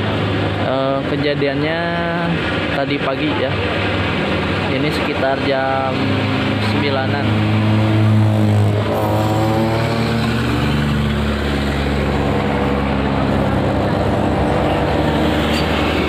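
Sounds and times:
heavy vehicle engines running: 0.0s - 16.0s
truck driving past: 3.5s - 16.0s
motorcycle engine revving: 3.6s - 16.0s.

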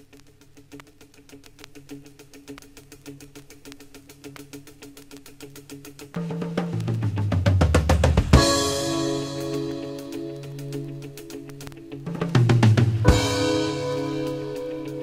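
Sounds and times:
rapid ticking percussion: 0.0s - 15.0s
bass line: 12.3s - 15.0s.

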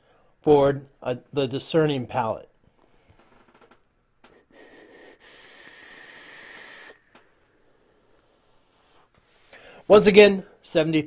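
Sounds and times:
vape draw hiss: 4.3s - 7.4s.

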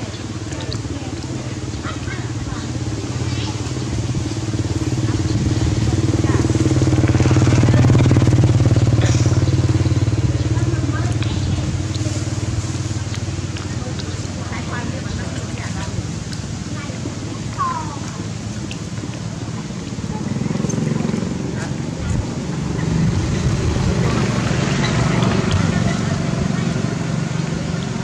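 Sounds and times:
vehicle engine passing by: 0.0s - 28.0s.

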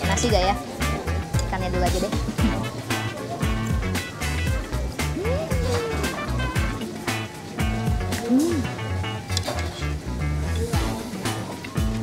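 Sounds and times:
music with steady beat and bass: 0.0s - 12.0s.

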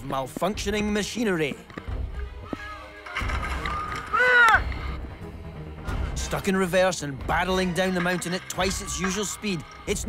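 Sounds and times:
background music with low pulse: 0.0s - 10.0s.

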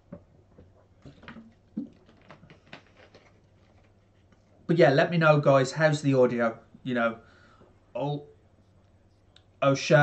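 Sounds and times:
man gulping water: 0.1s - 3.3s.

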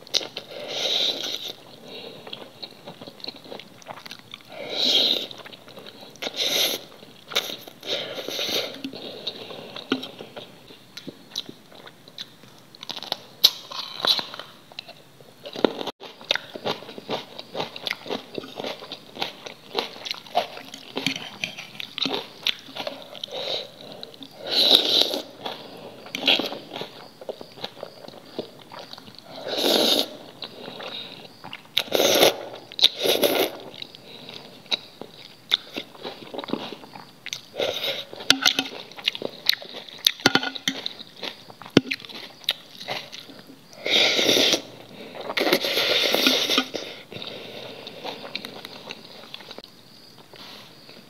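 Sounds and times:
chewing crisp chili pepper: 0.0s - 49.6s.

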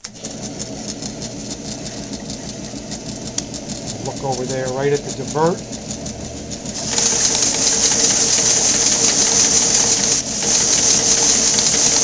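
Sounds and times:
machine motors humming: 0.0s - 12.0s
rapid regular ticking: 0.9s - 12.0s.

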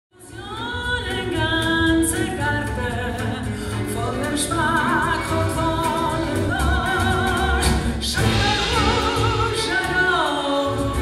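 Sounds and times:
music underneath: 0.2s - 11.0s
woman singing with vibrato: 0.2s - 11.0s.

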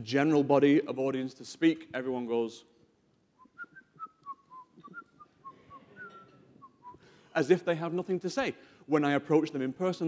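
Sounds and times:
man softly whistling tune: 3.4s - 7.3s.

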